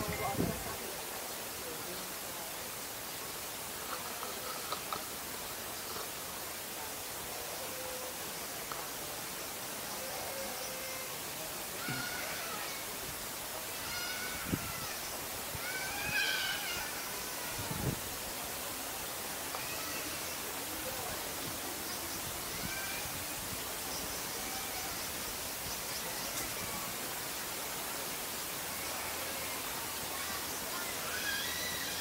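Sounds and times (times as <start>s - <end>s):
outdoor ambience hiss: 0.0s - 32.0s.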